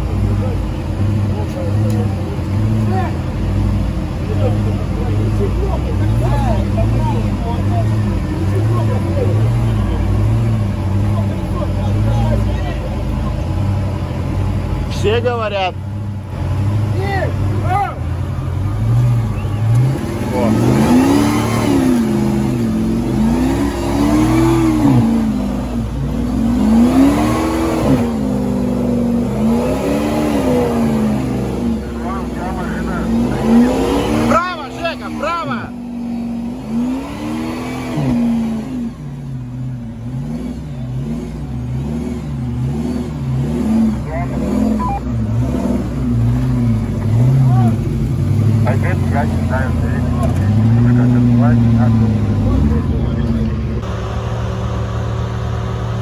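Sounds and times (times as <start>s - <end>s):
suv engine revving: 0.0s - 56.0s.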